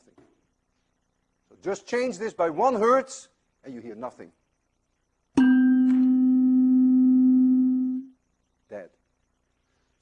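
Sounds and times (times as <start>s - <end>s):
tuning fork ringing: 5.3s - 8.2s.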